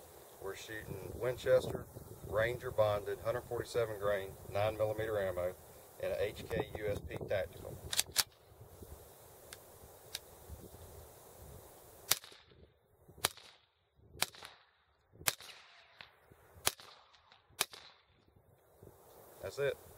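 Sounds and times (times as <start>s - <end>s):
pistol handling clicks: 7.9s - 8.4s
suppressed pistol shots: 12.1s - 12.6s, 13.2s - 18.1s.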